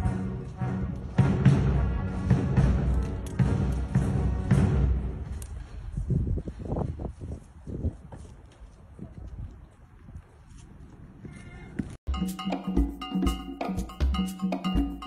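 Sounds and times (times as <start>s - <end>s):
band music with drum beat: 12.1s - 15.0s.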